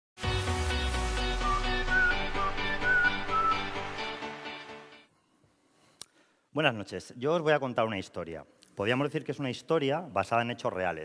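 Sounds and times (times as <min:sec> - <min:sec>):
intro music with high melody: 0:00.2 - 0:05.1.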